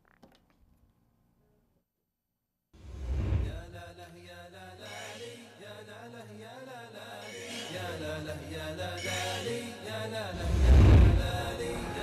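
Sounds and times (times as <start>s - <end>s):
chant-like sung vocal: 3.4s - 12.0s
deep boom: 10.4s - 11.8s.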